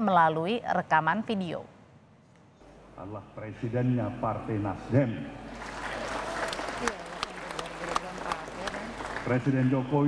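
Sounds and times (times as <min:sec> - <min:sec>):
audience applauding: 0:05.5 - 0:10.0.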